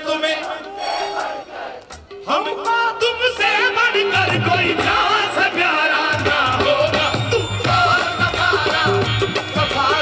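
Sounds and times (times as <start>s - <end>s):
group of voices singing together: 0.0s - 2.1s.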